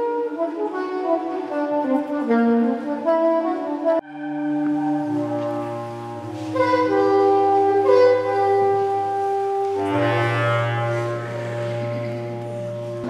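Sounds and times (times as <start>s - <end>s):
soprano saxophone long notes: 0.0s - 13.0s
steady low drone: 4.0s - 13.0s.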